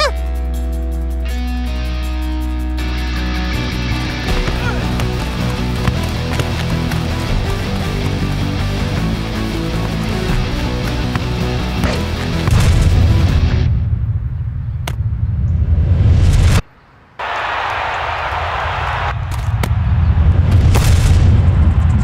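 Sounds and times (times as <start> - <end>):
dramatic cartoon music: 0.0 - 0.5, 2.8 - 13.7
deep rumbling boom: 19.5 - 22.0.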